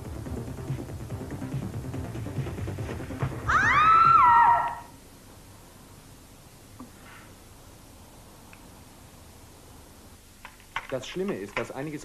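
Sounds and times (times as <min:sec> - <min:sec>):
woman screaming: 0:03.5 - 0:04.9.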